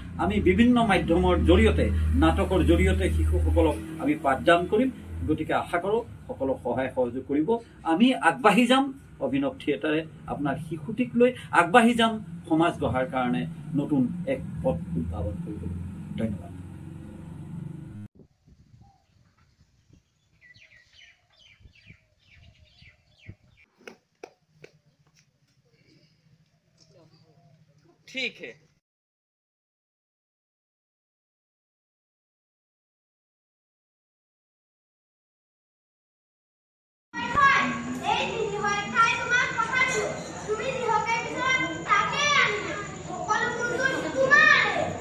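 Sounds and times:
birds chirping: 0:18.6 - 0:23.8, 0:24.6 - 0:28.4, 0:37.6 - 0:45.0
children calling out and talking: 0:37.2 - 0:45.0.

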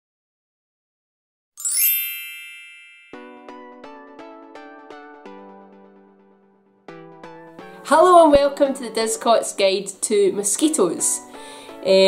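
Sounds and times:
shimmering logo chime: 0:01.6 - 0:03.7.

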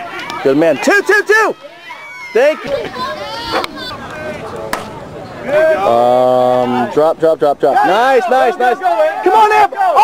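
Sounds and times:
people talking: 0:00.2 - 0:10.0.

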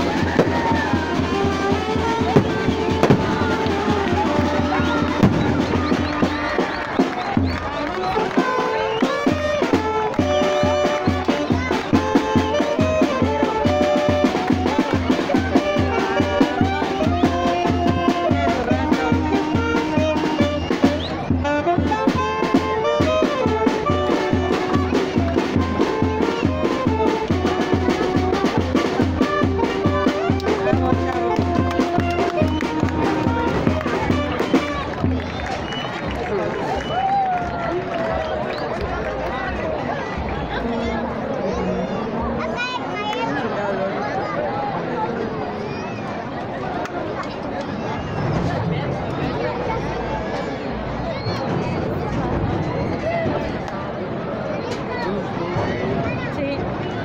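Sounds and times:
brass band music: 0:00.0 - 0:36.2.

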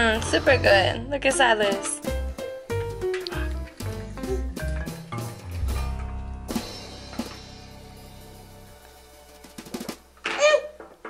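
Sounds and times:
music with drum beat and bass: 0:00.0 - 0:10.2.

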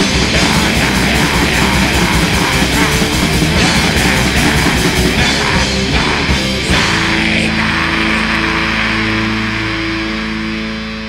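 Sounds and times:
distorted electric guitar chord ringing: 0:00.0 - 0:11.0.

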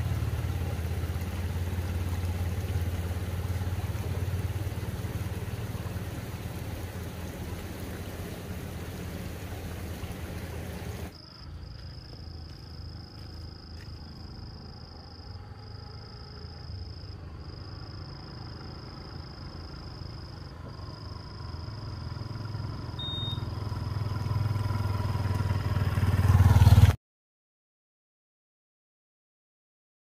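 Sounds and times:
vehicle engine rumbling: 0:00.0 - 0:27.0.

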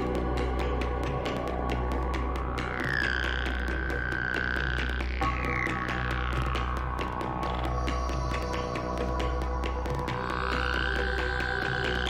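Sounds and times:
deep bass: 0:00.0 - 0:12.0
ticking percussion: 0:00.0 - 0:12.0.

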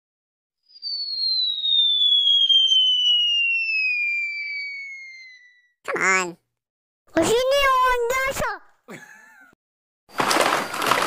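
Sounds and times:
descending whistle: 0:00.6 - 0:05.8.

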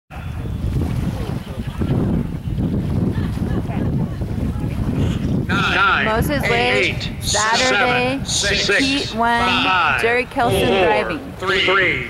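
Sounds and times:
distant racing boat engines rumbling: 0:00.1 - 0:12.0
wind buffeting microphone: 0:00.1 - 0:12.0
person speaking: 0:06.0 - 0:11.3.

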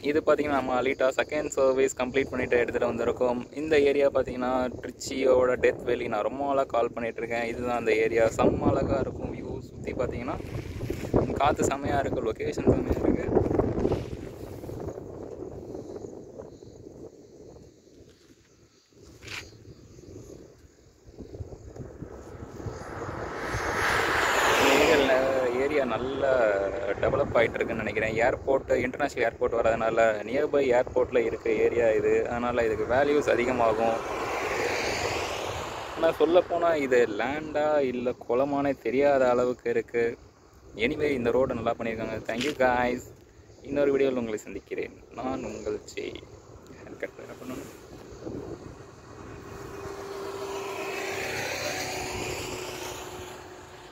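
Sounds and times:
car passing: 0:10.0 - 0:11.8, 0:19.9 - 0:40.8, 0:44.9 - 0:53.9.

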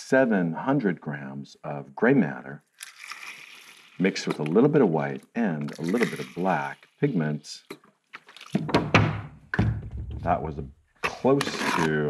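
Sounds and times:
water pouring: 0:02.7 - 0:08.7.

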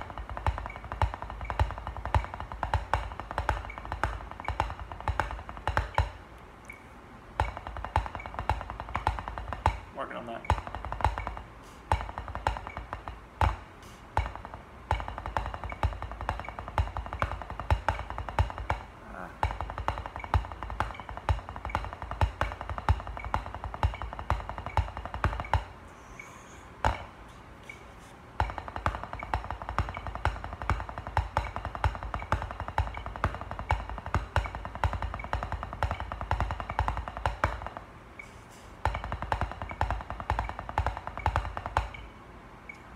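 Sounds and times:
drumsticks on practice pad: 0:00.0 - 0:42.9.

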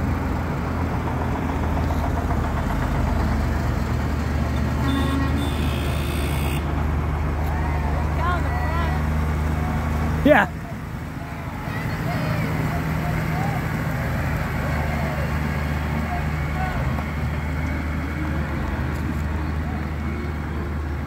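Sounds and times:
tractor engine driving past: 0:00.0 - 0:21.0
faint voices: 0:07.5 - 0:20.7.

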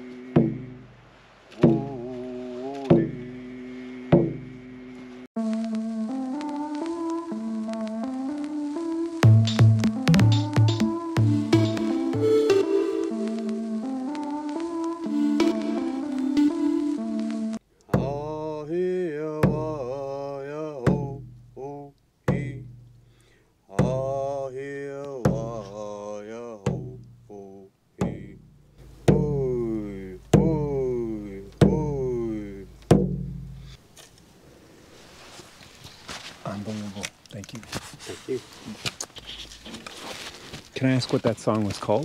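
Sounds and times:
frame drum beats: 0:00.4 - 0:00.9, 0:01.6 - 0:02.0, 0:02.9 - 0:03.3, 0:04.2 - 0:04.5, 0:09.2 - 0:12.7, 0:18.0 - 0:18.3, 0:19.4 - 0:19.9, 0:20.9 - 0:21.6, 0:22.3 - 0:23.0, 0:23.8 - 0:24.1, 0:25.3 - 0:25.6, 0:26.7 - 0:27.2, 0:28.0 - 0:33.8
man singing: 0:01.5 - 0:03.6, 0:17.9 - 0:22.7, 0:23.7 - 0:28.4, 0:29.0 - 0:32.8
background music: 0:05.4 - 0:17.6.

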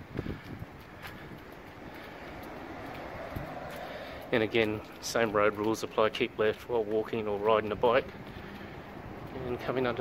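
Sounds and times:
wind on microphone: 0:00.0 - 0:02.0, 0:02.9 - 0:04.0
road traffic: 0:00.0 - 0:10.0.

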